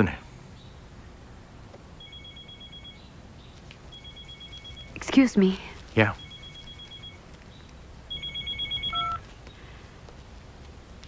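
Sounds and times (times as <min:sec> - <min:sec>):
electronic telephone ringing: 0:02.0 - 0:03.1, 0:03.9 - 0:05.3, 0:06.1 - 0:07.2, 0:08.1 - 0:09.2.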